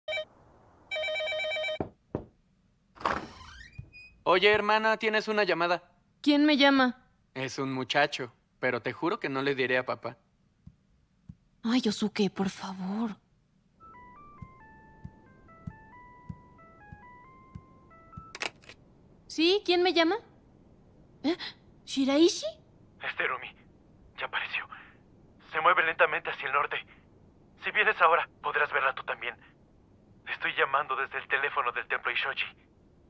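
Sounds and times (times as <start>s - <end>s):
telephone warbling ring: 0.9s - 1.8s
footsteps on wooden stairs: 1.8s - 2.4s
sharp knocks: 1.8s - 2.4s
telephone hold melody: 13.8s - 18.7s.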